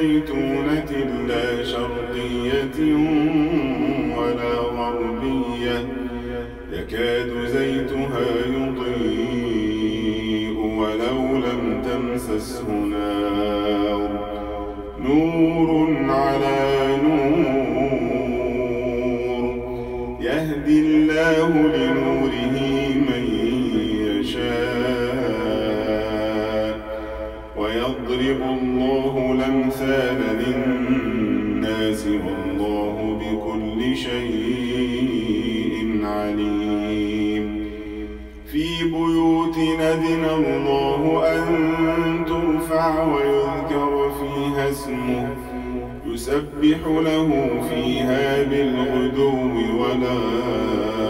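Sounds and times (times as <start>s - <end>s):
man chanting melodically: 0.0s - 51.0s.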